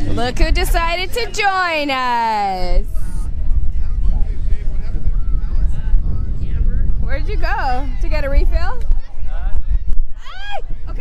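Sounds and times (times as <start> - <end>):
faint voices: 0.0 - 11.0
wind buffeting microphone: 0.0 - 11.0.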